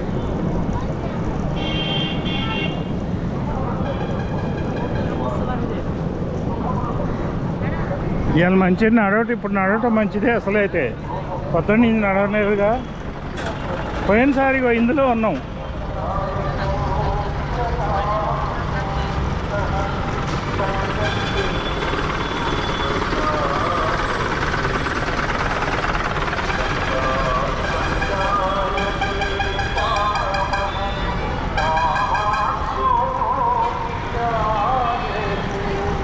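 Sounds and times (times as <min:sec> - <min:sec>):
low rumble of traffic: 0:00.0 - 0:36.0
people talking nearby: 0:05.0 - 0:21.6.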